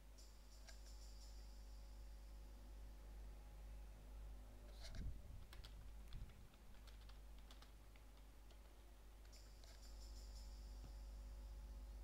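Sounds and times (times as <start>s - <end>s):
keyboard key clicks: 5.4s - 9.8s.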